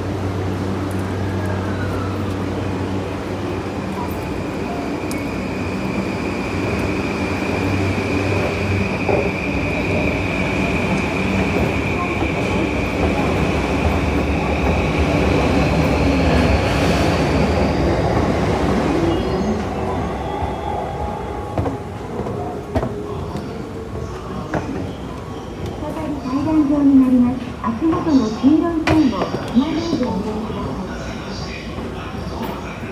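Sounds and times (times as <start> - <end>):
electric train rumbling and whining: 0.0 - 32.9.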